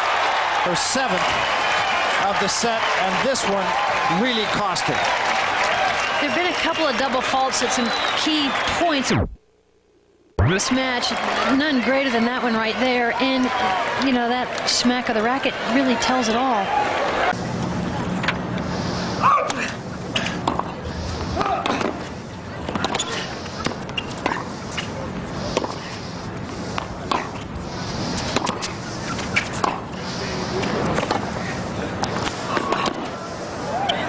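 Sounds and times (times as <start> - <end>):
shoes squeaking on court: 22.6 - 24.9
racket striking ball: 28.4 - 28.7.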